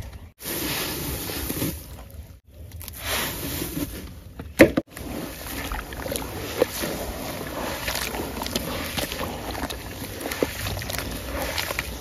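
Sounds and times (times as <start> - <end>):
hands kneading wet cement: 0.0 - 12.0
wet squishing and sloshing: 4.8 - 12.0.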